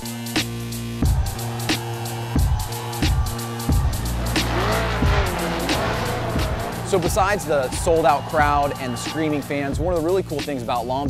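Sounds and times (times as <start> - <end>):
music with steady beat: 0.0 - 11.0
car engine revving: 2.6 - 10.4.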